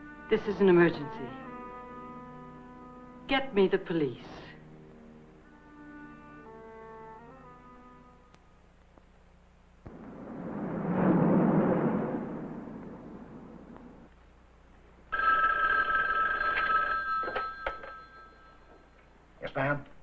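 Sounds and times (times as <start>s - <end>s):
rush of noise: 9.9s - 14.1s
two-tone telephone bell ring: 15.1s - 19.0s.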